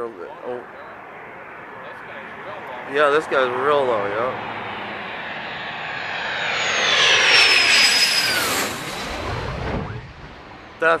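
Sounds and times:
fighter jet passing overhead: 0.0 - 11.0
low jet rumble: 0.0 - 11.0.

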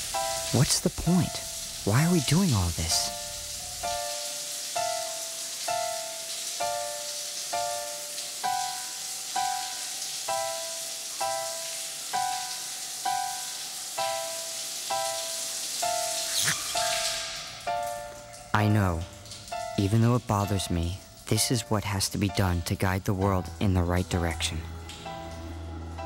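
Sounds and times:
background music single notes: 0.0 - 26.0
shower water running: 0.0 - 26.0.

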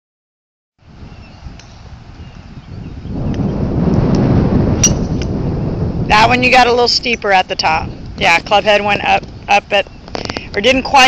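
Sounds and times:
wind buffeting microphone: 0.8 - 11.0
golf club striking ball: 4.8 - 5.4.

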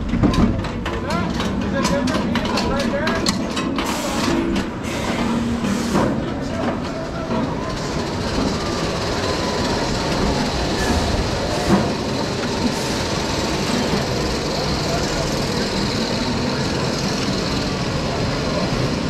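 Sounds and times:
roller coaster wheels rumbling: 0.0 - 19.0.

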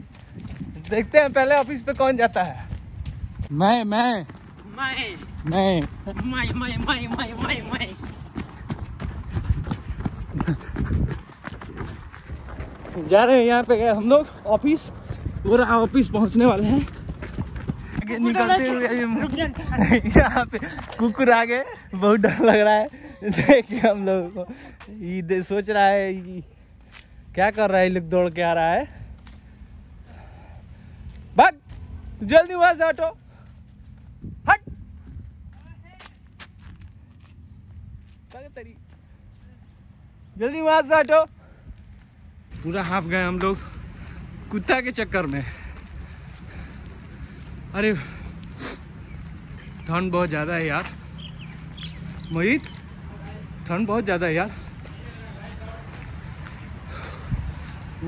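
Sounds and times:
footsteps running on dirt road: 0.0 - 39.8, 41.7 - 58.0.

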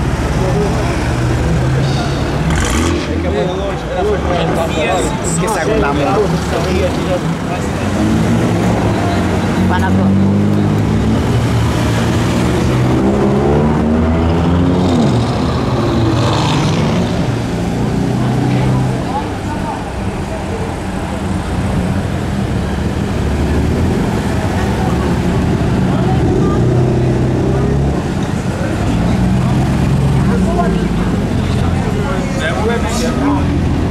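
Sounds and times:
car engine revving while accelerating: 1.0 - 3.3, 6.2 - 19.0.

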